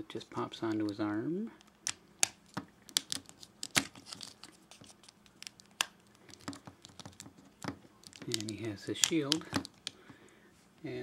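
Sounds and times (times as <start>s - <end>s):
hard plastic clicking and scraping: 2.5s - 10.1s.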